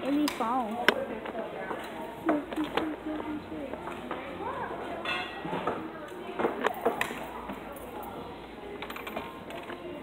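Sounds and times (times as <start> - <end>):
busy room background: 0.0 - 10.0.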